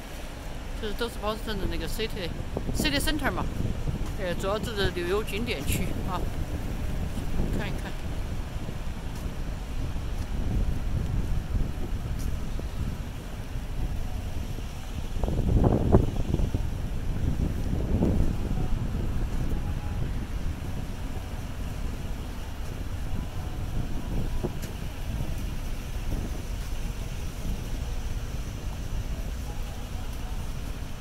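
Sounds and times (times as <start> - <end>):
traffic rumble: 0.0 - 31.0
wind buffeting microphone: 0.0 - 31.0.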